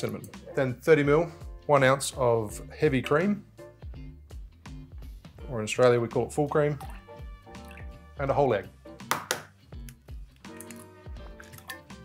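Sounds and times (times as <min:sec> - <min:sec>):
quiet background music: 0:00.0 - 0:12.0
egg cracking: 0:09.8 - 0:11.9.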